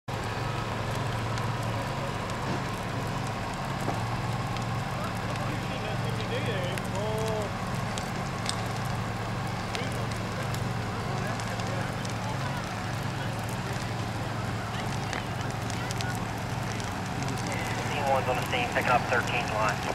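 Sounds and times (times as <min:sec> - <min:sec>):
burning car crackling: 0:00.1 - 0:19.9
fire engine idling: 0:00.1 - 0:19.9.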